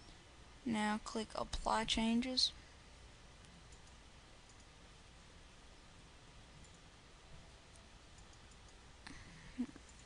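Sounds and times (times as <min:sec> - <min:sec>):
low background hum: 0:00.0 - 0:10.0
computer mouse clicks: 0:03.4 - 0:04.8, 0:06.6 - 0:06.9, 0:07.7 - 0:08.8, 0:09.8 - 0:10.0.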